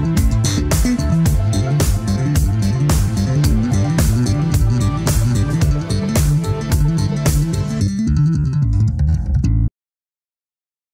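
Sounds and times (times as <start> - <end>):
electric bass guitar line: 0.0 - 9.7.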